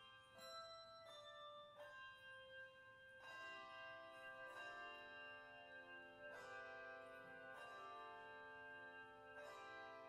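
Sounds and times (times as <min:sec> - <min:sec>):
handbell choir ringing chords: 0:00.0 - 0:10.0.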